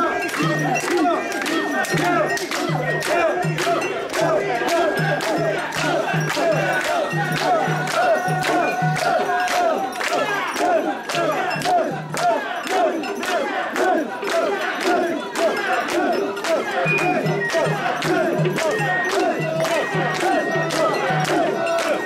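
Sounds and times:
crowd chanting and shouting: 0:00.0 - 0:22.0
sharp hand claps: 0:00.0 - 0:22.0.

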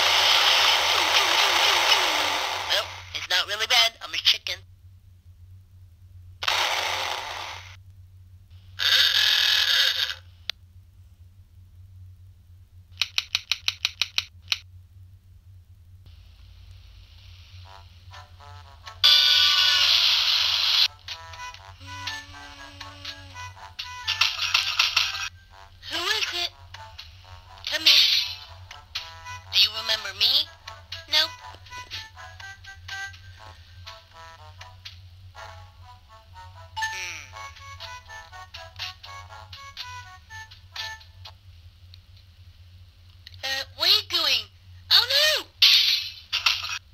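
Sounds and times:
steady low hum: 0:00.0 - 0:46.9
bursts of noise: 0:06.4 - 0:07.8.

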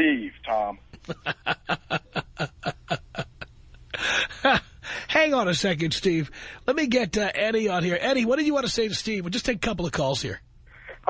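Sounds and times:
person laughing: 0:00.9 - 0:04.8.

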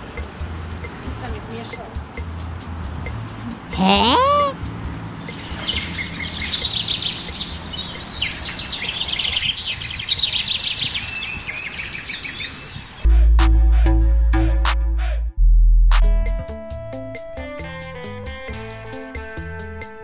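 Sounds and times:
music with heavy bass: 0:00.0 - 0:07.0, 0:13.1 - 0:20.0
cartoon birds chirping: 0:03.8 - 0:04.6.

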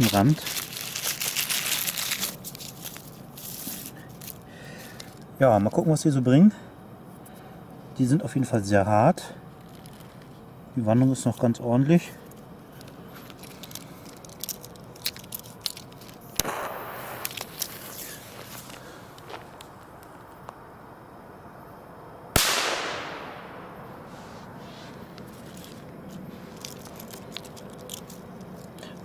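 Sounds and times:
firecracker fuse hissing: 0:00.0 - 0:05.2, 0:12.9 - 0:19.8, 0:22.4 - 0:28.2
firecracker bang with echo: 0:16.4 - 0:17.2, 0:22.4 - 0:24.1.

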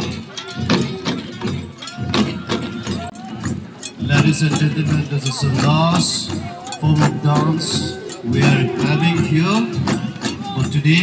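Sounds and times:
long drums beaten by hand: 0:00.0 - 0:11.0
voices: 0:00.0 - 0:11.0.

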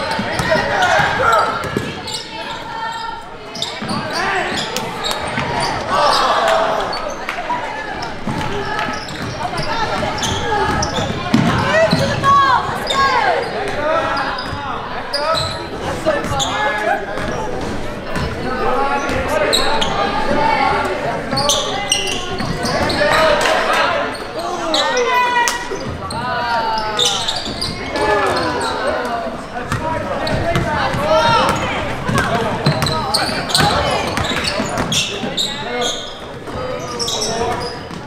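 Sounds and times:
sneakers squeaking on floor: 0:00.0 - 0:07.2, 0:07.8 - 0:38.0
voices of players and crowd: 0:00.0 - 0:38.0
basketball dribbling: 0:29.7 - 0:35.1.

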